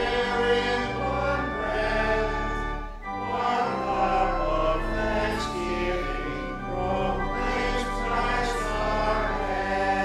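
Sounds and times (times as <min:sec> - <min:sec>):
congregation singing a hymn: 0:00.0 - 0:10.0
pipe organ chords: 0:00.0 - 0:10.0.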